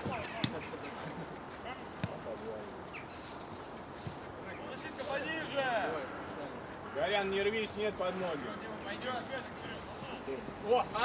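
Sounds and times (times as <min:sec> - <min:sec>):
ball being kicked: 0:02.0 - 0:02.2.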